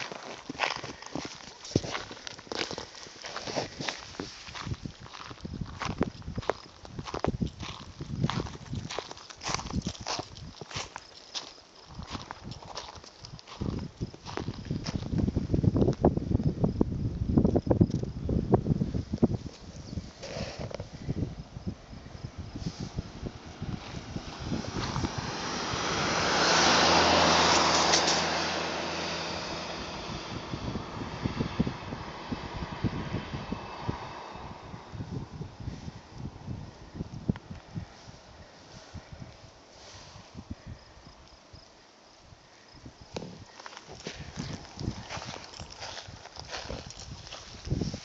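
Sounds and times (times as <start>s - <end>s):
footsteps crunching on gravel: 0.0s - 15.4s, 23.6s - 25.5s, 43.1s - 48.0s
wind rumbling on microphone: 0.0s - 48.0s
low engine hum: 11.9s - 41.6s
motor vehicle passing by: 21.9s - 41.2s.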